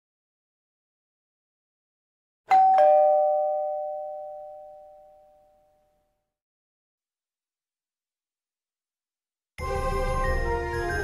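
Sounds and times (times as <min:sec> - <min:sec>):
ding-dong doorbell chime: 0:02.5 - 0:06.0.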